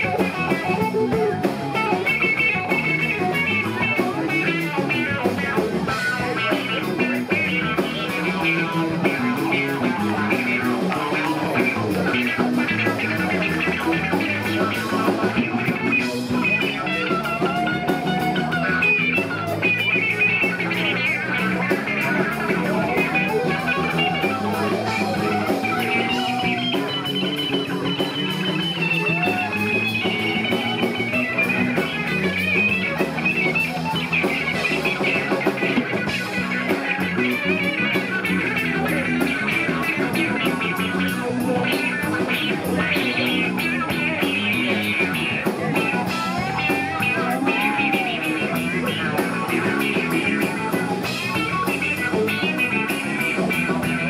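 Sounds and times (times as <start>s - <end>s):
drum kit: 0.0s - 54.0s
electric guitars: 0.0s - 54.0s.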